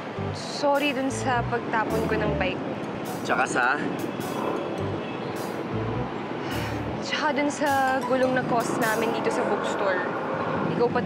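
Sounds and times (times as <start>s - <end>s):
soft background music: 0.0s - 10.2s
street traffic noise: 0.0s - 11.0s.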